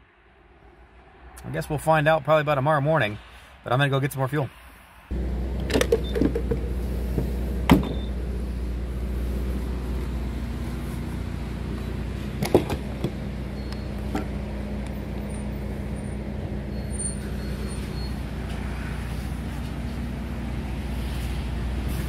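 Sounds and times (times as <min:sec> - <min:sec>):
fuel pump humming: 0:05.1 - 0:22.0.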